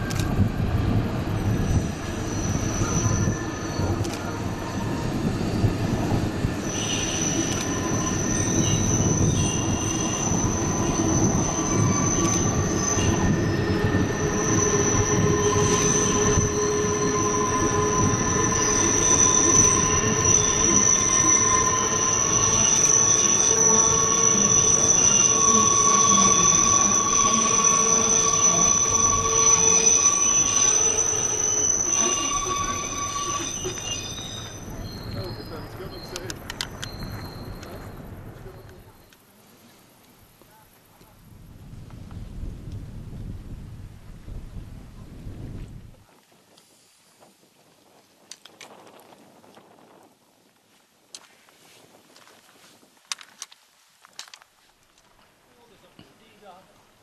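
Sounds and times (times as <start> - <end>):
train wheels rumbling: 0.0 - 39.2
train wheels squealing: 1.2 - 39.2.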